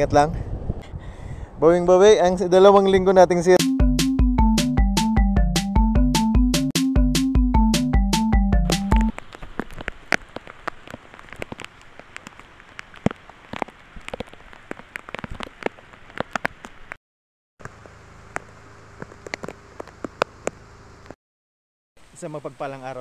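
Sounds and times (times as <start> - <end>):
electronic music jingle: 3.6 - 9.1
rain falling: 8.7 - 17.0.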